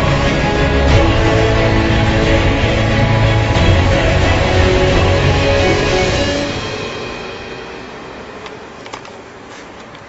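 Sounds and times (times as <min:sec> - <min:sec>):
background music: 0:00.0 - 0:09.5
faint street noise: 0:00.0 - 0:10.0.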